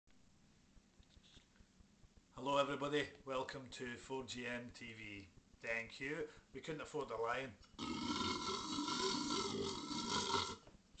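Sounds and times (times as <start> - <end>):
man imitating lion roar: 7.8 - 10.6.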